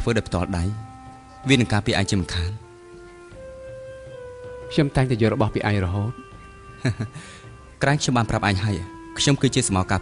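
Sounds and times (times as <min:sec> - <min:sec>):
held steady note: 0:00.0 - 0:10.0.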